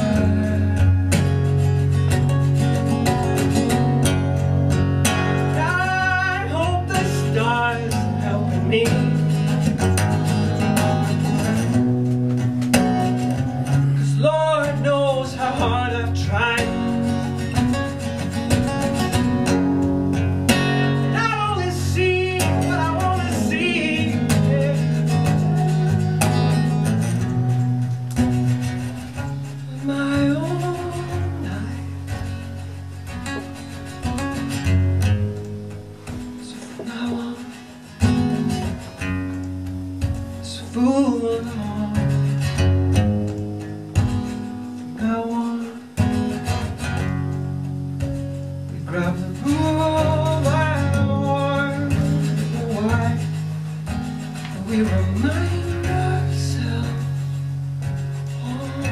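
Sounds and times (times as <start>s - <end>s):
acoustic guitar strumming: 0.0s - 58.9s
person singing: 5.3s - 9.6s, 20.9s - 27.0s, 28.8s - 32.2s, 36.4s - 38.8s, 40.5s - 42.6s, 44.8s - 46.4s, 48.8s - 53.5s, 54.4s - 57.5s, 58.1s - 58.9s.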